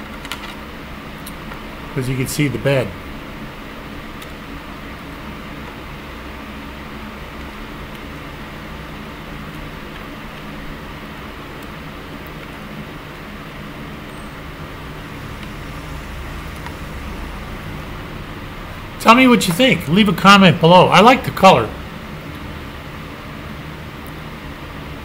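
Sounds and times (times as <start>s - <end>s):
electric fan humming: 1.4s - 23.9s.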